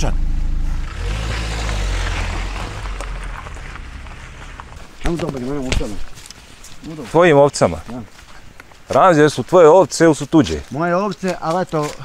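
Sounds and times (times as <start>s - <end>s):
car engine idling: 0.0s - 6.0s
rushing noise with low rumble: 0.0s - 6.2s.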